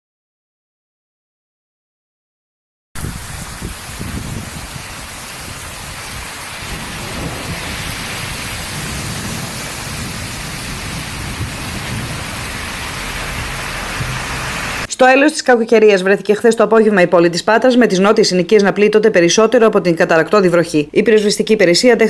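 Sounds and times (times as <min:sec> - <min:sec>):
torrential rain on street: 0:03.0 - 0:14.9.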